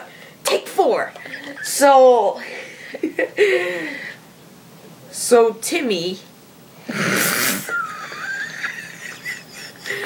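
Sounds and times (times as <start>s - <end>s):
boy giggling: 1.2s - 4.0s, 7.6s - 10.0s.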